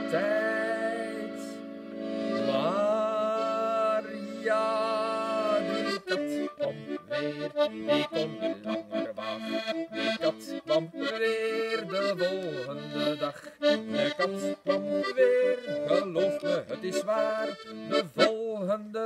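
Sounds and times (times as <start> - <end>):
button accordion playing: 0.0 - 18.7.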